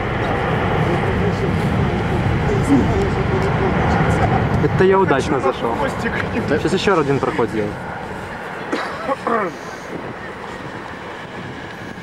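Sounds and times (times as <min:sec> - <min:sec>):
faint voices: 0:00.0 - 0:12.0
jet aircraft engine noise: 0:00.0 - 0:12.0.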